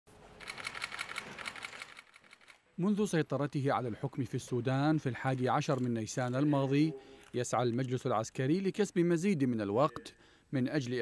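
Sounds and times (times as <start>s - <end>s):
camera shutters firing rapidly: 0.4s - 2.5s.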